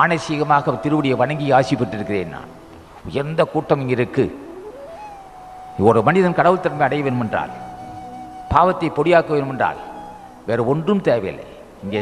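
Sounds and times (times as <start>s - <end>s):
man speaking into a microphone: 0.0s - 2.5s, 3.1s - 4.4s, 5.8s - 7.6s, 8.5s - 12.0s.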